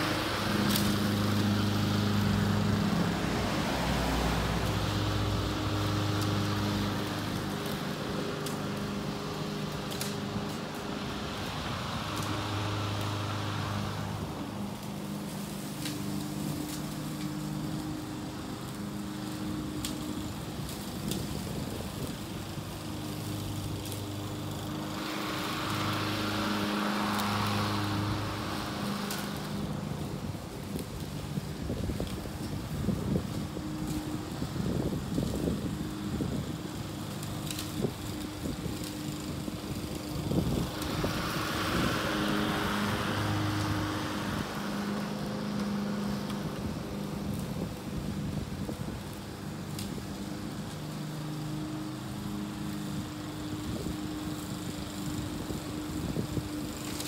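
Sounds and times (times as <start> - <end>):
lawn mower cutting grass: 0.0 - 57.0.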